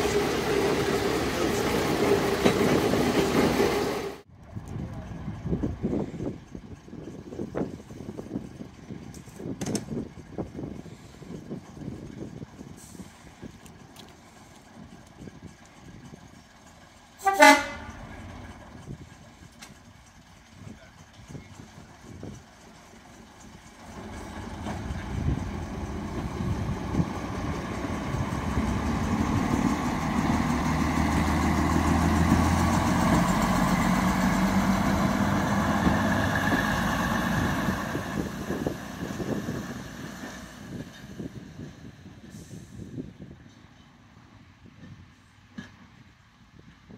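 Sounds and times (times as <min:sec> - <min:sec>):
train diesel engines passing: 0:00.0 - 0:46.9
train horn toot: 0:17.2 - 0:18.0.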